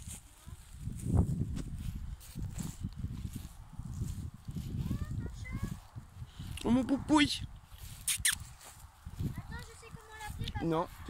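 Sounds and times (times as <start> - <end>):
footsteps on dry grass: 0.0 - 11.0.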